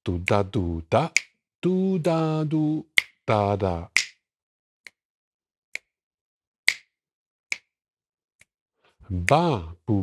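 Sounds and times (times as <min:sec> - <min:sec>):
finger snaps: 0:01.0 - 0:01.4, 0:02.9 - 0:03.2, 0:03.9 - 0:04.2, 0:04.8 - 0:05.0, 0:05.7 - 0:06.0, 0:06.7 - 0:07.8, 0:09.2 - 0:09.5.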